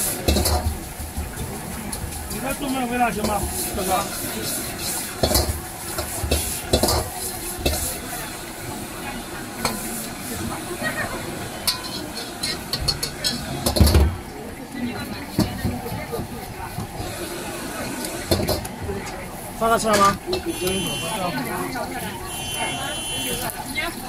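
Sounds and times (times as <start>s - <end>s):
rice sizzling in a wok: 0.0s - 24.0s
metal ladle scraping a wok: 1.9s - 8.4s, 9.6s - 10.3s, 11.4s - 14.0s.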